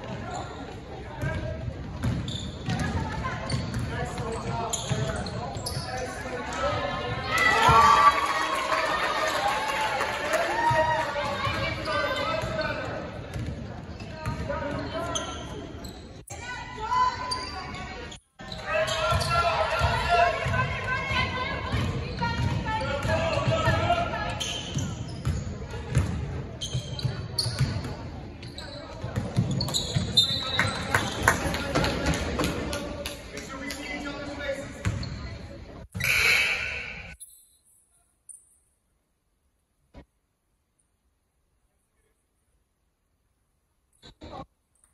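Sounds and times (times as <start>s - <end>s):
voices echoing in gym: 0.0s - 38.7s.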